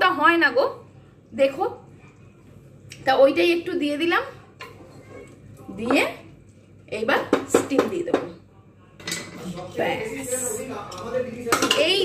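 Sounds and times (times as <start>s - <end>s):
pots and utensils clattering: 9.0s - 9.8s, 10.9s - 12.0s.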